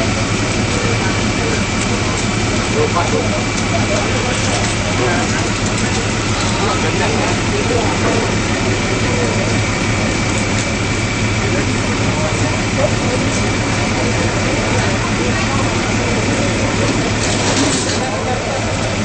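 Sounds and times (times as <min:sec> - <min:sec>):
engine idling: 0:00.0 - 0:19.0
indistinct voices: 0:00.0 - 0:19.0.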